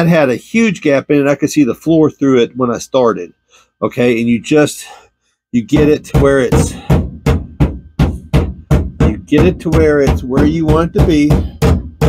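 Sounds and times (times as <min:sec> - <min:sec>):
hammer tapping on sheet steel: 0:05.7 - 0:12.0.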